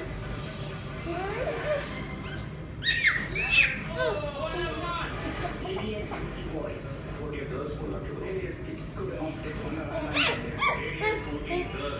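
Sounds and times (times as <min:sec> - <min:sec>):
toddler squealing: 0:01.2 - 0:04.2
soft voices: 0:03.2 - 0:07.4, 0:08.7 - 0:11.9.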